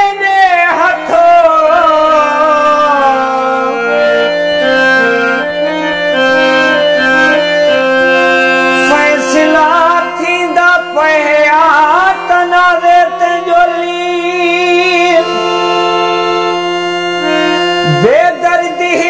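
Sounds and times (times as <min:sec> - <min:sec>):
man singing: 0:00.0 - 0:06.2, 0:08.6 - 0:19.0
harmonium melody over drone: 0:00.0 - 0:19.0.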